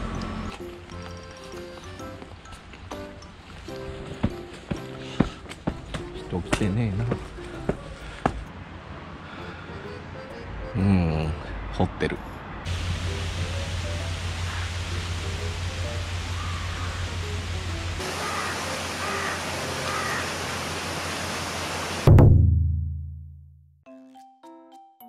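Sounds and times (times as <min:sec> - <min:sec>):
water cascade rushing: 0:12.7 - 0:22.1
light chiming music: 0:23.9 - 0:25.0.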